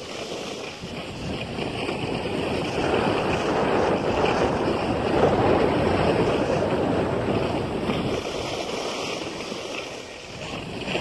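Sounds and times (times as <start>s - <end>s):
skis scraping over snow: 0.0s - 11.0s
wind rushing over microphone: 0.0s - 11.0s.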